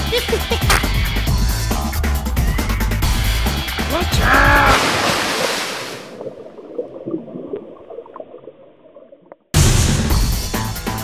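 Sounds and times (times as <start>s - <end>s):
rush of water: 3.6s - 6.4s
voice call: 3.8s - 4.8s.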